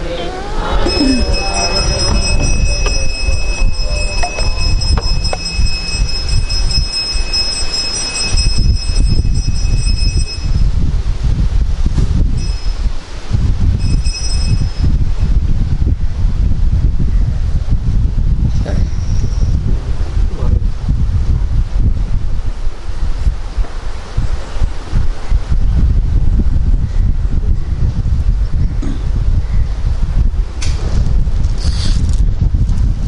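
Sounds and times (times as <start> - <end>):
high-pitched whine tones: 0.0 - 10.7, 12.4 - 12.9, 13.8 - 15.0
wind buffeting microphone: 0.0 - 33.0.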